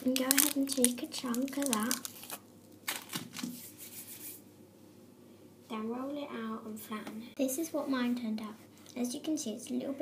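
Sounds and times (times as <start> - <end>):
rustling and handling noise: 0.0 - 5.0.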